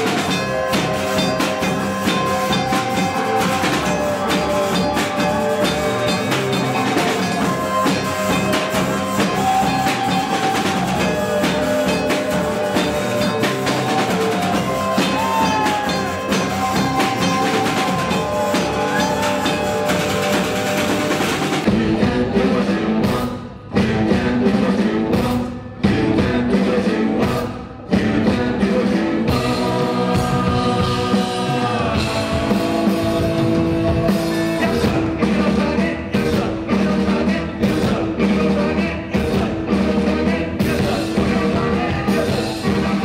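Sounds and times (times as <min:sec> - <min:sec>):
drum kit and cymbals: 0:00.0 - 0:43.0
electric bass guitar: 0:00.0 - 0:43.0
rock music: 0:00.0 - 0:43.0.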